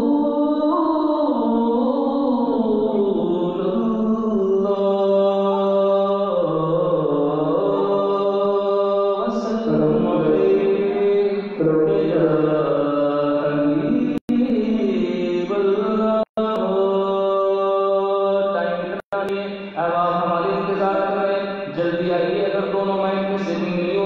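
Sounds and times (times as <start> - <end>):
man singing into a microphone: 0.0 - 24.0.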